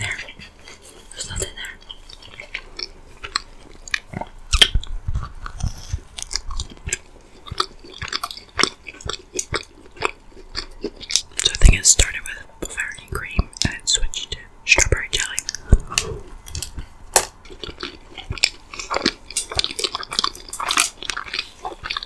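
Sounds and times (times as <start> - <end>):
chewing soft donut: 0.0 - 22.0
wet mouth clicks and smacks: 1.2 - 14.2.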